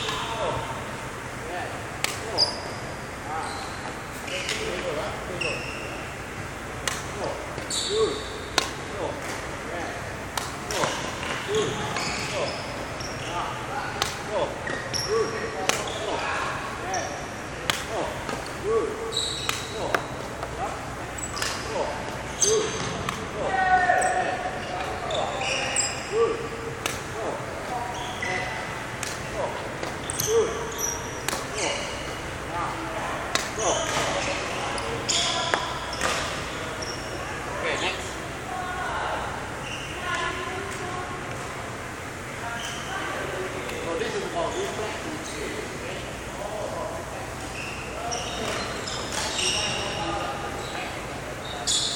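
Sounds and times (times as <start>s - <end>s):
racket hitting shuttlecock: 2.0s - 2.4s, 6.8s - 7.7s, 8.5s - 9.4s, 10.3s - 11.4s, 14.0s - 14.3s, 15.6s - 16.0s, 17.6s - 18.5s, 19.4s - 20.6s, 21.3s - 23.3s, 26.8s - 27.1s, 28.9s - 30.2s, 31.2s - 31.6s, 33.3s - 34.2s
sneakers squeaking on wooden court: 2.2s - 6.1s, 7.6s - 8.8s, 10.7s - 13.6s, 14.6s - 27.0s, 27.6s - 32.3s, 33.3s - 37.4s, 39.6s - 40.8s, 42.5s - 43.0s, 47.5s - 51.9s.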